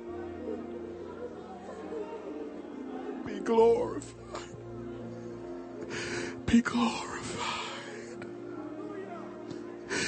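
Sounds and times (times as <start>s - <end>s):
person whispering a prayer: 6.3s - 10.0s.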